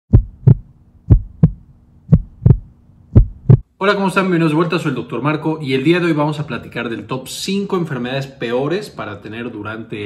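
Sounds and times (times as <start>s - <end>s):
heartbeat thumps: 0.1s - 3.7s
faint low hum: 0.1s - 10.0s.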